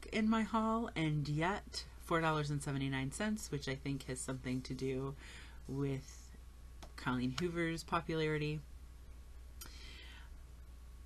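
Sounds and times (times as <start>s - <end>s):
low steady hum: 0.0s - 11.0s
quick breath: 5.2s - 5.6s, 9.6s - 10.4s.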